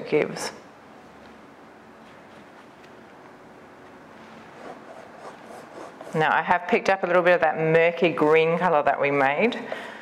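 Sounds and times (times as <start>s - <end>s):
paintbrush scratching: 2.0s - 2.9s, 4.2s - 6.4s.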